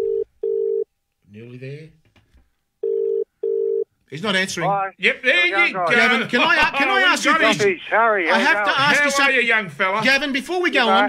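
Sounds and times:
telephone ringback tone: 0.0 - 0.8, 2.8 - 3.9.

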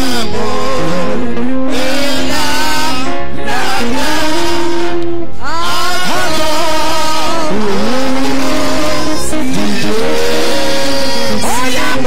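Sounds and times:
man singing into microphone: 0.0 - 12.0.

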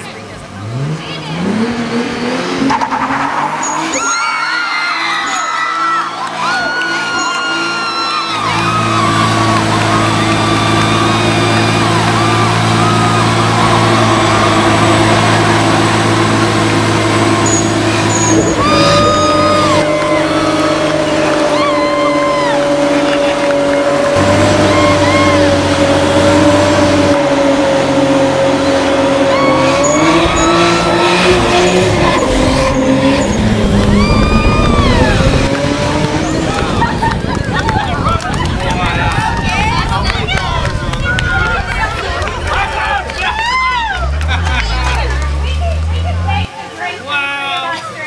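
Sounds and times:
car engine at high revs: 0.0 - 47.0
tire squeal: 2.6 - 37.0
people shouting and cheering: 3.4 - 27.7, 28.3 - 48.0.

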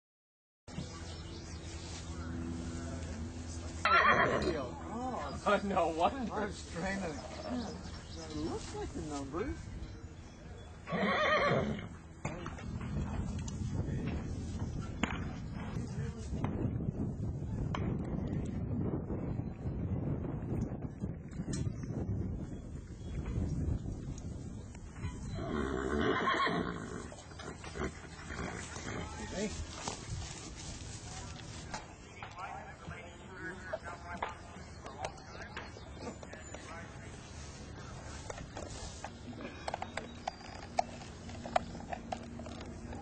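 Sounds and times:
horse whinnying: 3.8 - 4.6, 10.9 - 11.9, 25.4 - 29.1.

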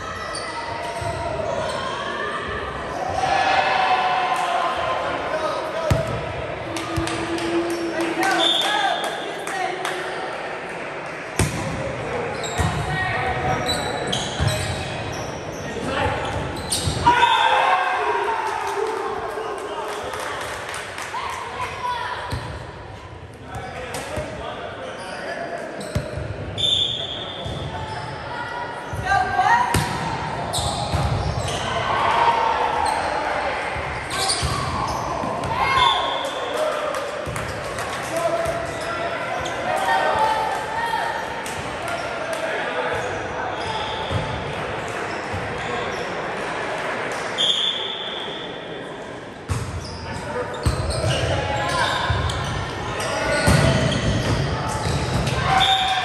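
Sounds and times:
players' voices echoing: 0.0 - 56.0.

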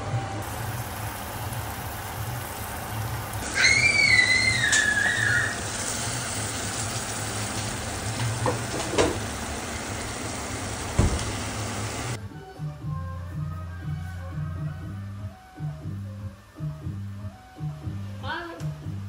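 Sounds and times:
food sizzling in a frying pan: 0.4 - 12.2
background music: 12.2 - 19.0.

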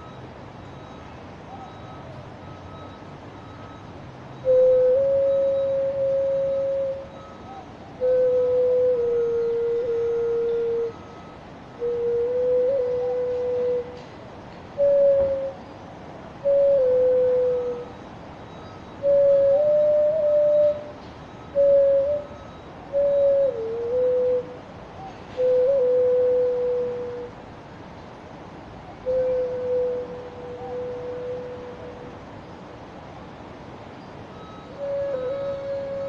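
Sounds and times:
clay flute slow melody: 0.0 - 27.5, 28.9 - 32.4, 34.3 - 36.0.

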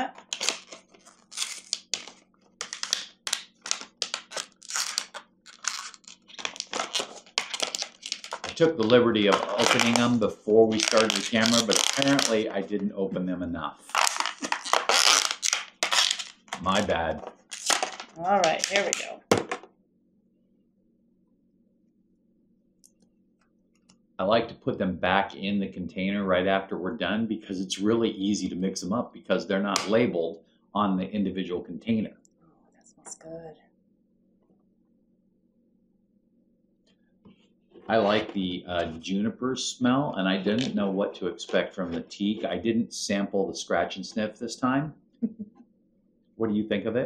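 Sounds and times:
plastic packaging crackling: 0.0 - 12.5, 13.8 - 19.2
low steady hum: 2.8 - 15.3, 16.5 - 17.5, 22.8 - 33.6, 36.9 - 45.6, 46.4 - 47.0.

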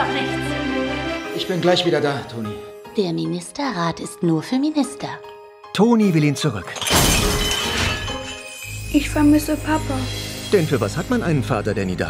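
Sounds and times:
teacup smashing: 6.7 - 8.5
tinkling shards: 6.7 - 11.6.

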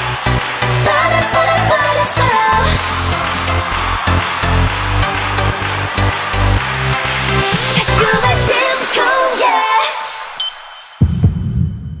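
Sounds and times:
song: 0.1 - 11.0.

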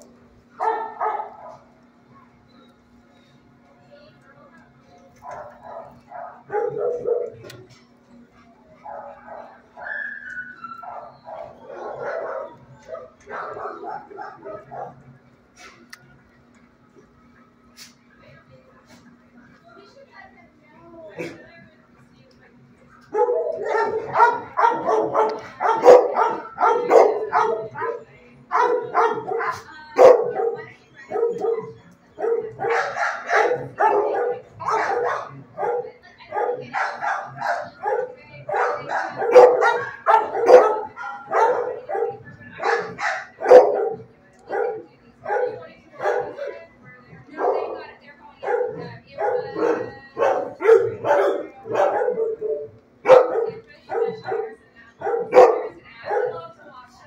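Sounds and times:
dogs barking: 0.5 - 1.8, 5.2 - 7.6, 8.8 - 15.1, 23.0 - 46.7, 47.3 - 56.6.

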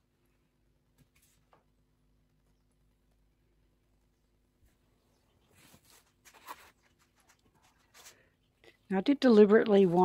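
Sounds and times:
woman speaking: 8.9 - 10.0.

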